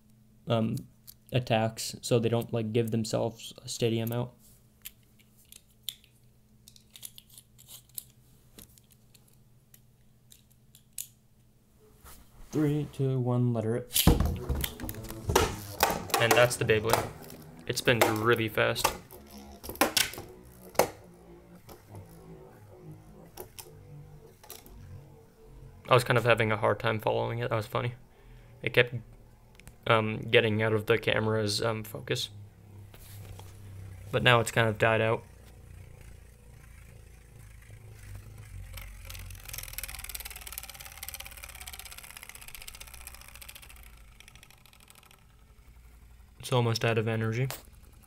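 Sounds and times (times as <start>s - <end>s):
spinning top whirring: 14.0s - 48.0s.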